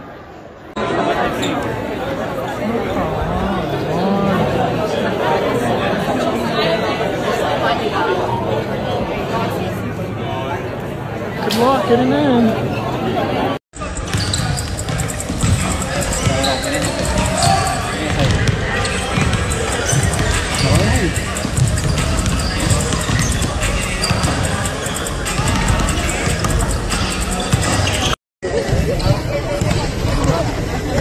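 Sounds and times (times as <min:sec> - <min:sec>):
people talking: 0:00.0 - 0:31.0
basketballs bouncing on hardwood floor: 0:14.2 - 0:23.5.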